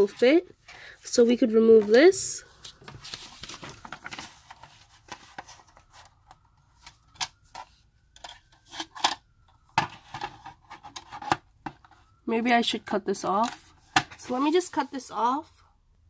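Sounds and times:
paper rustling: 0:01.4 - 0:06.2.

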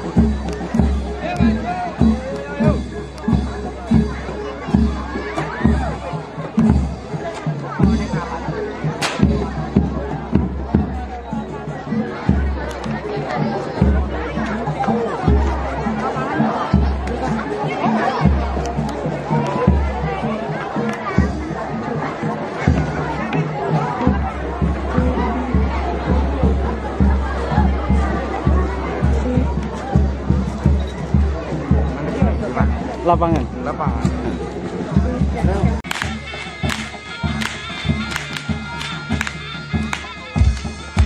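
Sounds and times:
crowd chatter and shouting: 0:00.0 - 0:41.0
troupe music with deep drum: 0:00.0 - 0:41.0
sharp crack: 0:09.0 - 0:09.3, 0:35.8 - 0:40.1.

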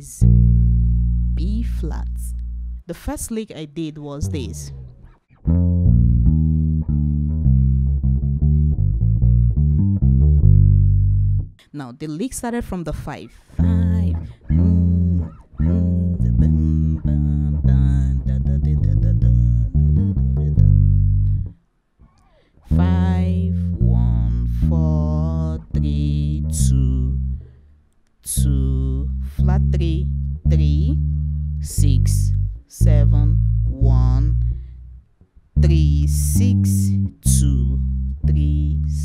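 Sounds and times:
electric bass guitar: 0:00.0 - 0:11.6, 0:13.5 - 0:39.0.

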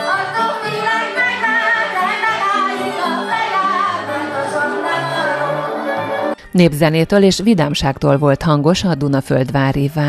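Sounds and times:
clarinet: 0:00.0 - 0:06.4
woman singing: 0:00.0 - 0:06.4
violin melody: 0:00.0 - 0:06.5.

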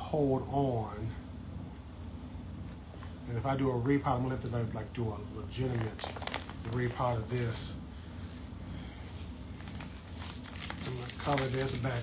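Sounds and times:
plastic wrapping crinkling: 0:05.5 - 0:12.0.

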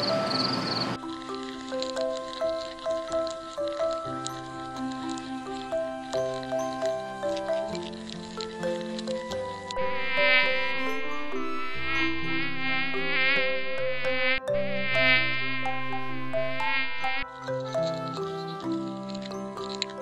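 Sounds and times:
soft background music: 0:00.0 - 0:20.0
insect wing buzz: 0:00.3 - 0:19.9.

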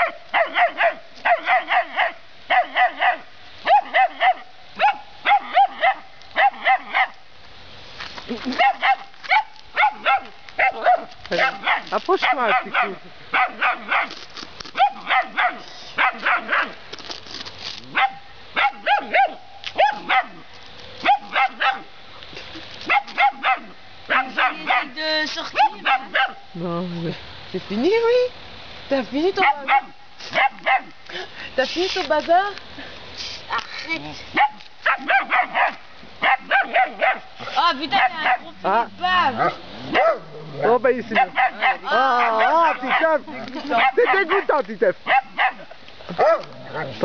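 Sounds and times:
young dog yappy barking: 0:00.0 - 0:07.2, 0:08.6 - 0:16.8, 0:17.8 - 0:21.9, 0:22.8 - 0:26.5, 0:29.4 - 0:31.0, 0:34.3 - 0:47.0.

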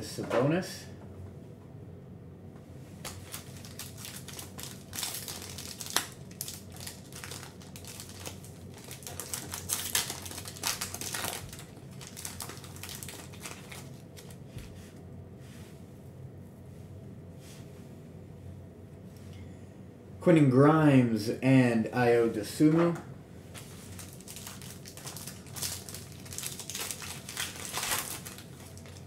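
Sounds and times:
wrapper crinkling: 0:03.0 - 0:14.4, 0:23.6 - 0:29.0.

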